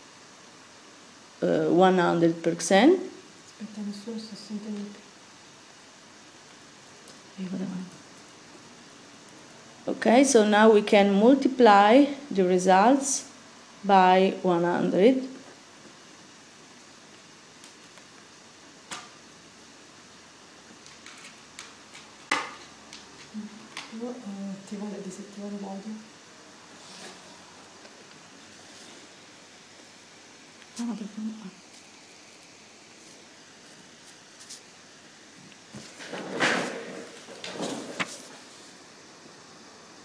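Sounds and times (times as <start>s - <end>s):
faint microphone hiss: 0.0s - 40.0s.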